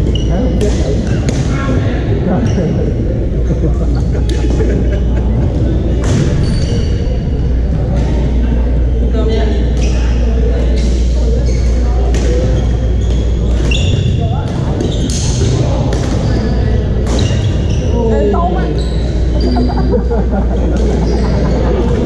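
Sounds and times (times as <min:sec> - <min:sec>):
sneaker squeaks on gym floor: 0:00.0 - 0:01.6, 0:05.7 - 0:07.0, 0:09.5 - 0:19.7, 0:20.8 - 0:21.6
steady low hum: 0:00.0 - 0:17.7, 0:18.5 - 0:22.0
voices of players: 0:00.0 - 0:22.0.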